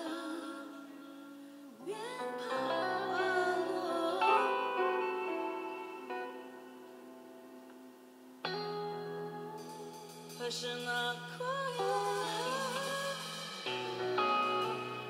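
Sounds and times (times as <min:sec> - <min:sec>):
woman singing slow song: 0:00.0 - 0:06.1, 0:08.5 - 0:15.0.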